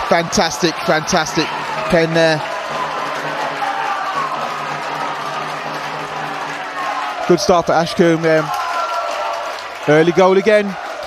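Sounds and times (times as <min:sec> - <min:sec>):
crowd cheering and singing: 0:00.0 - 0:11.0.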